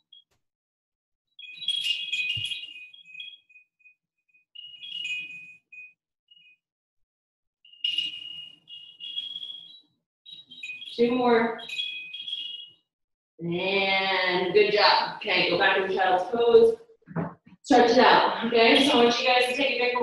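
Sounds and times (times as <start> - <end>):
high-pitched electronic chiming tones: 1.4 - 3.5, 4.6 - 6.5, 7.7 - 12.8.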